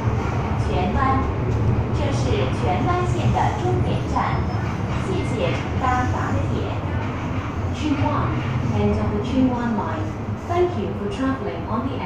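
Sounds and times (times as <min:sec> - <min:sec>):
train rumbling: 0:00.0 - 0:12.0.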